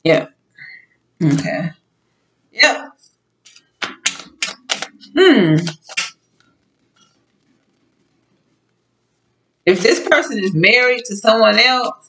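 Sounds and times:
cards shuffled by hand: 0:03.4 - 0:06.2.

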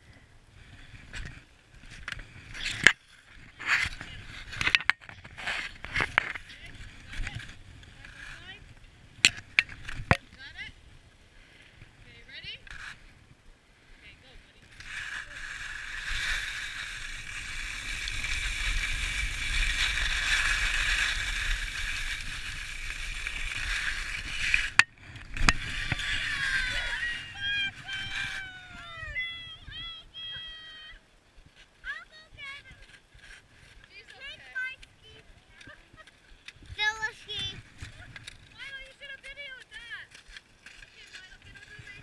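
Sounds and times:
skis scraping over snow: 0:00.5 - 0:10.7, 0:12.0 - 0:29.6, 0:31.5 - 0:42.0.

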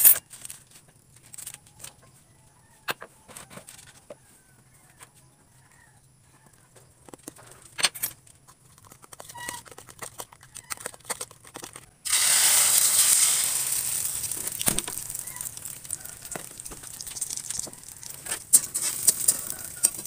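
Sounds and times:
egg sizzling in hot oil: 0:12.0 - 0:20.0.

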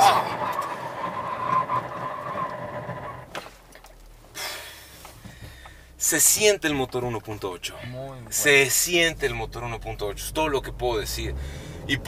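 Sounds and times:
engine and road noise with whine: 0:00.0 - 0:12.0.

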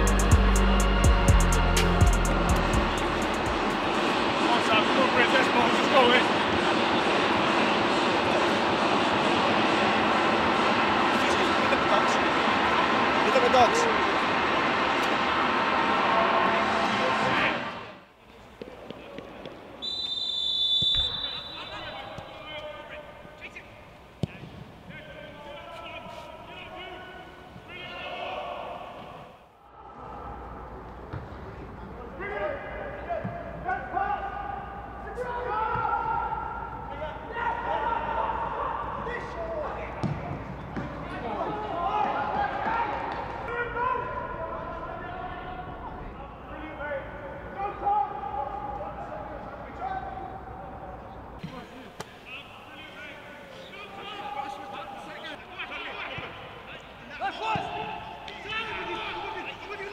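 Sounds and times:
loud continuous din: 0:00.0 - 0:18.0
referee's whistle: 0:19.8 - 0:22.6
players shouting: 0:25.0 - 0:30.7, 0:32.2 - 0:40.2, 0:41.1 - 0:59.9
football being kicked: 0:40.0 - 0:40.9.

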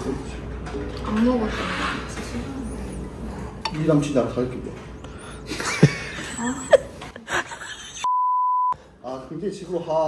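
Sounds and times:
high-pitched censor bleep: 0:08.1 - 0:08.8.

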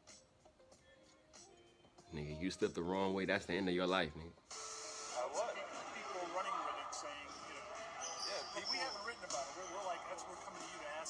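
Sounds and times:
men talking quietly: 0:05.2 - 0:11.0.

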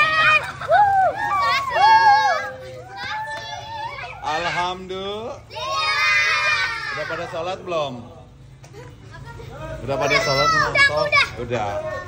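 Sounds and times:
child shouting: 0:00.0 - 0:04.7, 0:05.5 - 0:07.3, 0:09.9 - 0:12.0
children chattering: 0:00.0 - 0:12.0.

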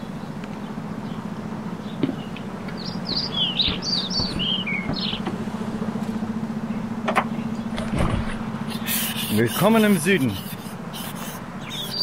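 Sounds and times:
small bird singing: 0:00.0 - 0:05.3, 0:06.6 - 0:07.8, 0:08.6 - 0:12.0
steady low hum: 0:00.0 - 0:12.0.

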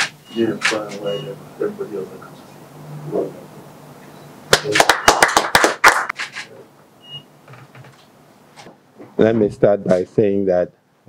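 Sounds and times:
people clapping: 0:04.5 - 0:06.5.

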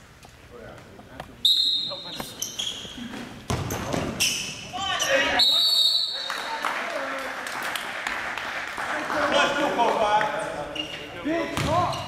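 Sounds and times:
sneaker squeaks: 0:01.4 - 0:06.3, 0:10.6 - 0:12.0.

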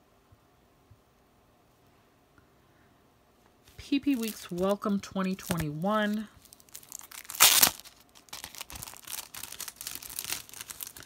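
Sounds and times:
sticker sheets rustling and crinkling: 0:03.6 - 0:11.0.

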